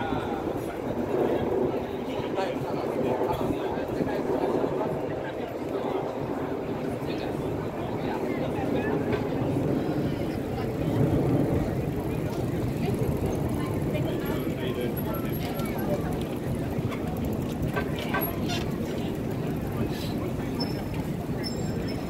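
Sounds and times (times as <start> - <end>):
bicycles rolling past: 0.0 - 22.0
crowd talking indistinctly: 0.0 - 22.0.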